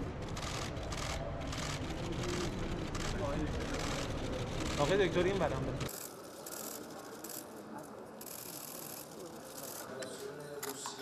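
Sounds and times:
noisy hall hubbub: 0.0s - 11.0s.

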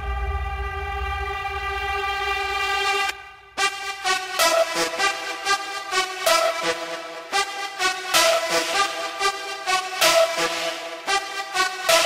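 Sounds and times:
low bass: 0.0s - 3.8s
held synthesizer chord: 0.0s - 12.0s.

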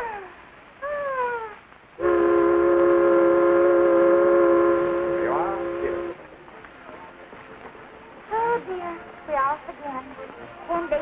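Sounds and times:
ship's whistle blast: 2.0s - 6.2s.

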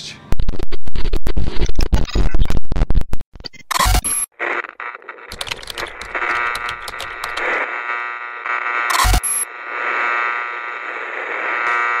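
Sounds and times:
rapid digital crackles: 0.3s - 7.7s, 8.9s - 9.5s.

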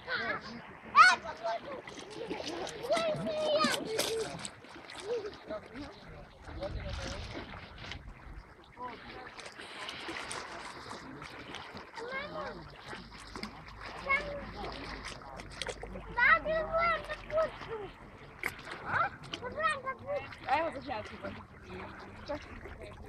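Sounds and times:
water splashing: 0.0s - 23.0s.

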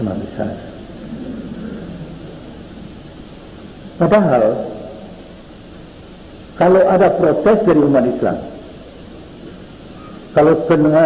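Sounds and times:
faint low murmuring: 0.0s - 5.7s
tape hiss: 0.0s - 11.0s.

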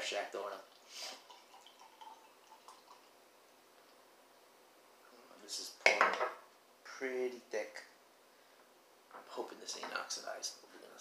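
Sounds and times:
beer pouring into glass mug: 0.7s - 3.2s.

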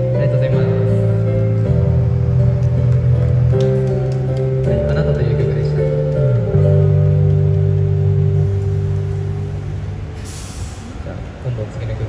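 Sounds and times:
street traffic noise: 0.0s - 12.0s
short hiss: 10.2s - 11.1s.

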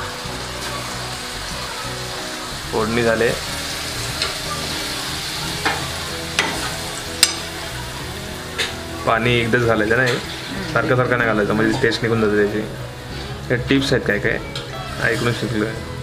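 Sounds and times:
fish sizzling in a pan: 0.0s - 16.0s
spoon clinking against pan: 5.6s - 7.6s.

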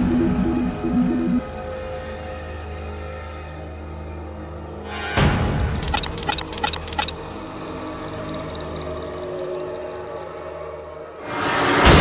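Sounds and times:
eerie synthesizer drone: 0.0s - 12.0s
typing clicks: 5.8s - 7.2s.

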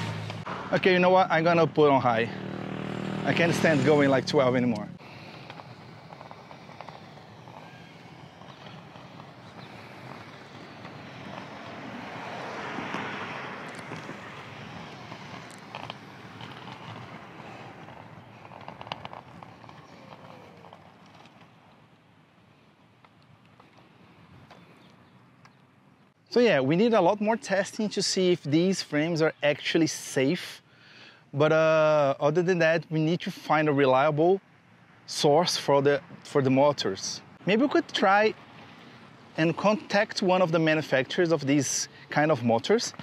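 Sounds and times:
skate wheels rolling on pavement: 0.0s - 28.8s, 35.1s - 43.0s.

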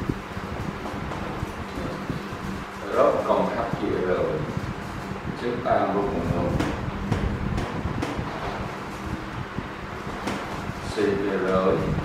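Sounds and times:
steady low hum: 0.0s - 12.0s
cloth rubbing on whiteboard: 0.4s - 5.0s.

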